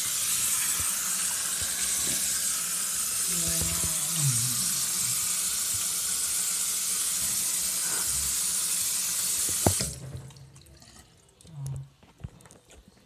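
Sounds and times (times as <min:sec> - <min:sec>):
faucet running into sink: 0:00.0 - 0:11.4.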